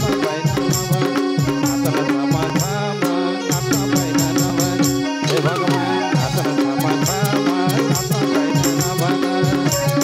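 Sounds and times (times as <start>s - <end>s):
hand drum rhythm: 0.0s - 10.0s.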